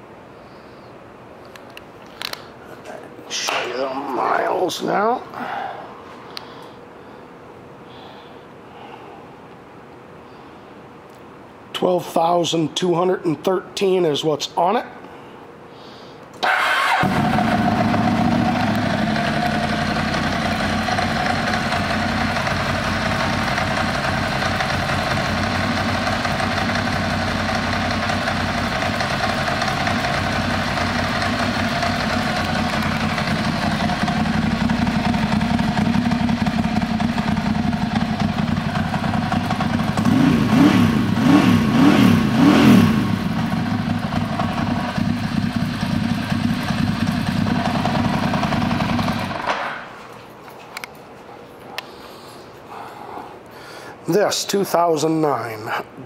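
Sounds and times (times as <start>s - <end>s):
motorcycle engine idling: 17.0s - 49.5s.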